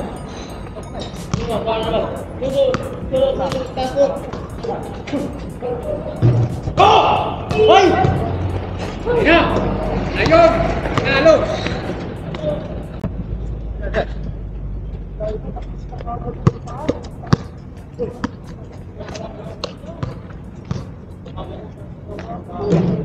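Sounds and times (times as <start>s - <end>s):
players calling out: 0.0s - 13.0s
basketball bouncing on concrete: 19.9s - 20.9s.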